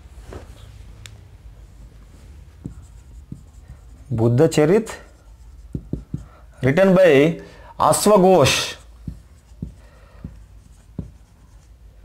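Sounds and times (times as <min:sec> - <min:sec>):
marker writing on whiteboard: 0:01.6 - 0:07.1, 0:07.9 - 0:12.0.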